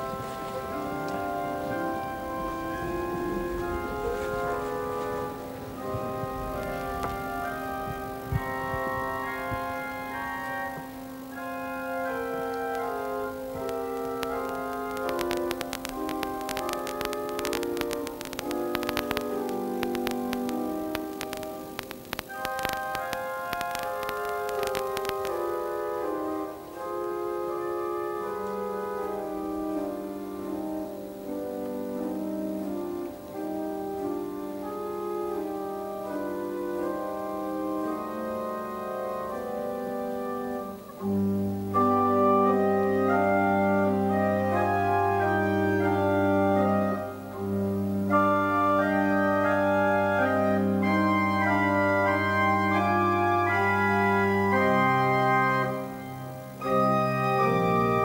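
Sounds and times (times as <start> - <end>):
organ playing slow chords: 0.0 - 58.0.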